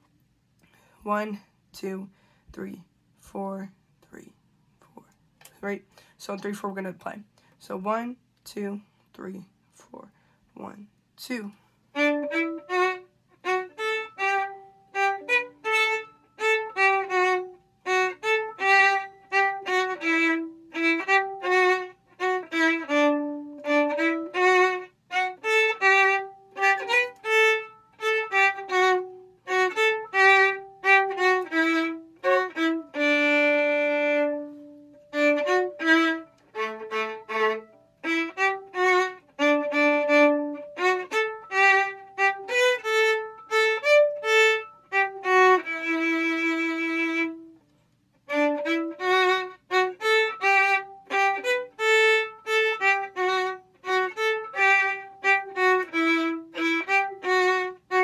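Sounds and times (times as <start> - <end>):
solo violin playing: 11.9 - 58.0.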